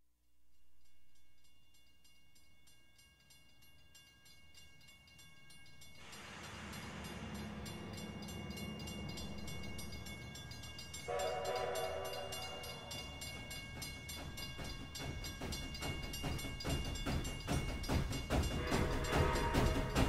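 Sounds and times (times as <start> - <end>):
train rumbling: 4.6 - 20.0
steam whistle blast: 11.1 - 12.9, 18.6 - 20.0.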